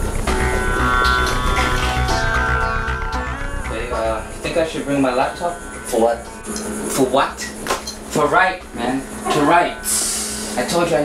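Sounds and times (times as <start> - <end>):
steady low hum: 0.0 - 11.0
men talking: 3.7 - 11.0.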